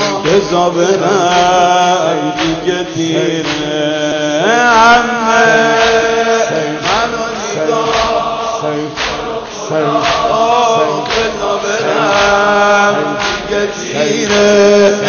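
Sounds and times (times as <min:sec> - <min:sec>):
crowd of men chanting: 0:00.0 - 0:15.0
unison chest-beating: 0:00.0 - 0:15.0.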